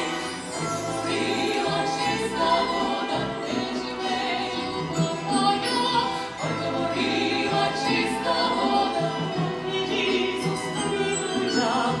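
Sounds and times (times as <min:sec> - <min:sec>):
women singing in harmony: 0:00.0 - 0:12.0.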